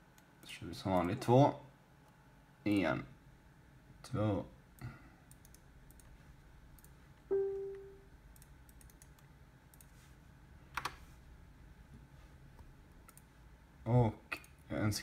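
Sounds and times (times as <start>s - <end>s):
computer mouse clicks: 5.3s - 6.2s, 8.3s - 10.0s, 13.0s - 13.3s
short pitched tone: 7.3s - 8.0s.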